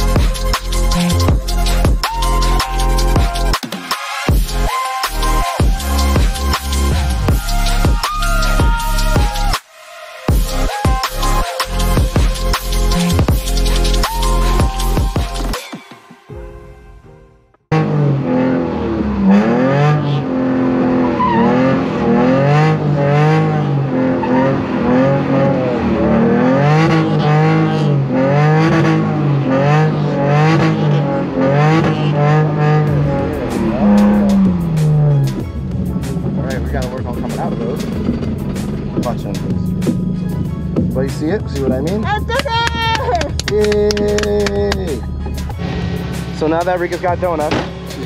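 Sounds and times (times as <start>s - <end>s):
car engine revving: 17.7s - 48.0s.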